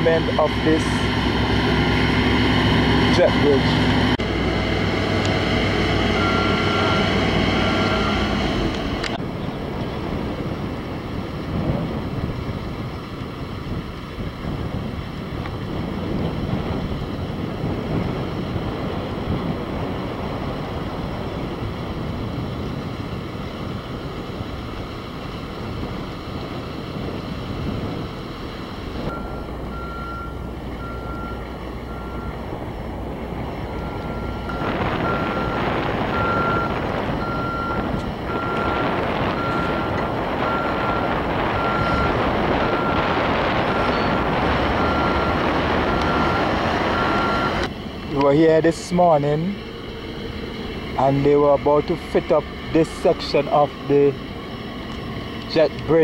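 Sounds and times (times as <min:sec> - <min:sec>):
diesel engines running: 0:00.0 - 0:56.0
backup alarm beeping: 0:06.0 - 0:08.3, 0:29.1 - 0:32.4, 0:33.7 - 0:47.7.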